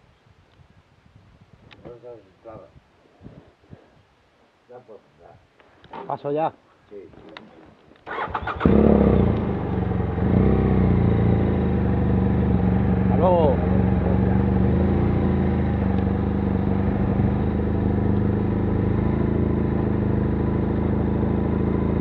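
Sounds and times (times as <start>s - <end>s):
motorcycle engine running: 8.1s - 22.0s.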